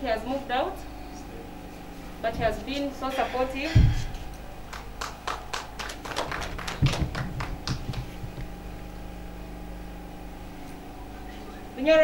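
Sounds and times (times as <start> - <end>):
steady low hum: 0.0 - 12.0
hand claps: 4.7 - 8.5.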